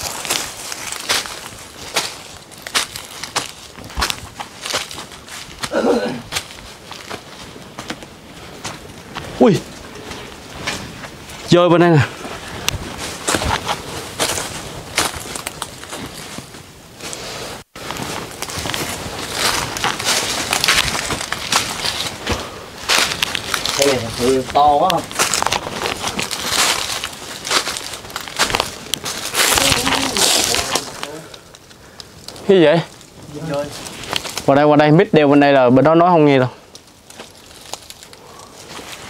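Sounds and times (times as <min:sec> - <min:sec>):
footsteps through dry leaves: 0:00.0 - 0:05.6, 0:12.4 - 0:17.2, 0:17.8 - 0:31.2, 0:36.9 - 0:39.0.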